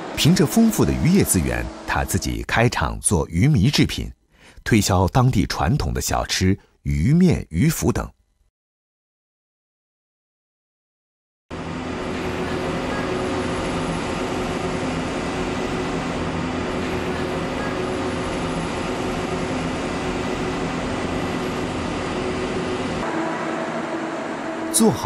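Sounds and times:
production machinery humming and whirring: 0:00.0 - 0:02.5, 0:11.5 - 0:25.0.

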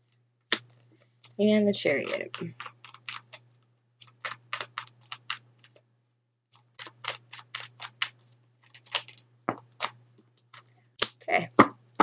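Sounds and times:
cards being shuffled: 0:06.6 - 0:11.1.

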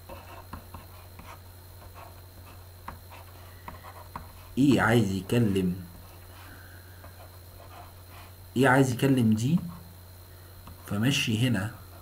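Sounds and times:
stylus scratching on tablet: 0:00.0 - 0:08.4
low electrical hum: 0:00.0 - 0:12.0.

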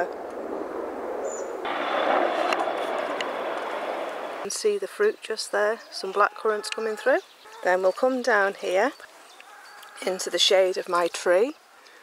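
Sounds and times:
helicopter engine and rotor: 0:01.7 - 0:04.4.

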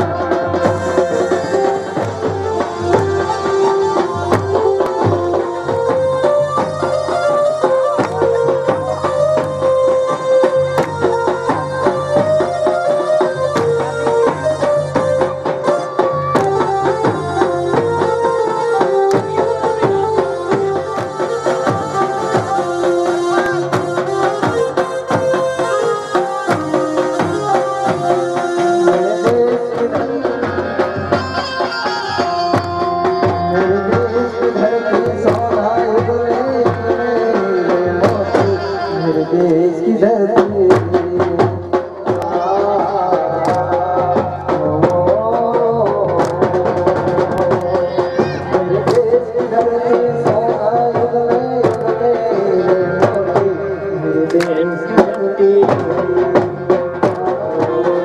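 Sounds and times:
drum strikes: 0:00.0 - 0:58.0
folk dance music: 0:00.0 - 0:58.0
keyboard and string melody: 0:00.0 - 0:58.0.

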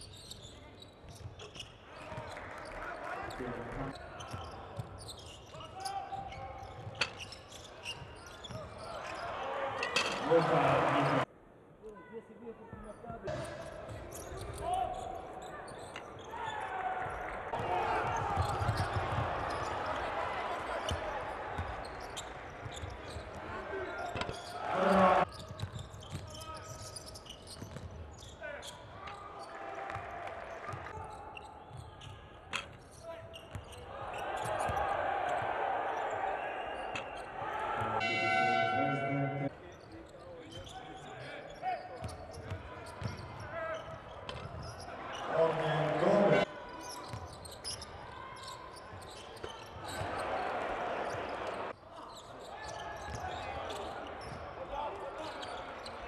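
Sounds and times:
crowd noise: 0:01.8 - 0:11.8, 0:13.3 - 0:25.4, 0:28.5 - 0:56.0.

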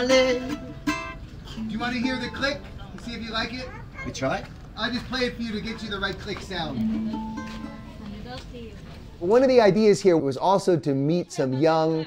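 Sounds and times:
acoustic guitar notes ringing: 0:00.0 - 0:02.9, 0:06.8 - 0:08.1.

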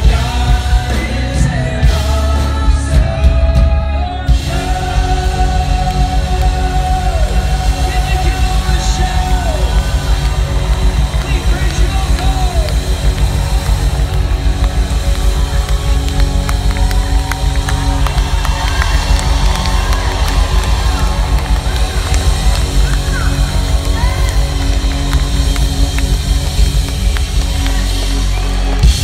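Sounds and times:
live band playing loudly: 0:00.0 - 0:29.0.

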